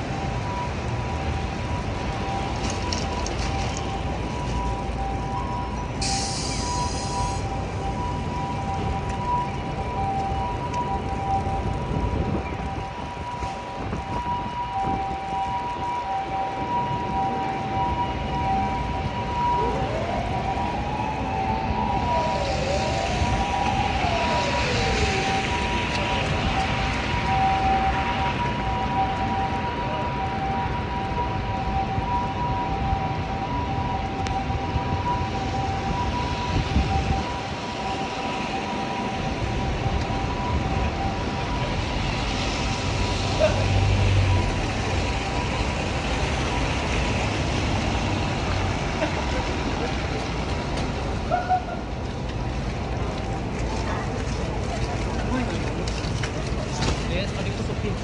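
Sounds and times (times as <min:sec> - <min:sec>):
traffic on slushy road: 0:00.0 - 0:58.0.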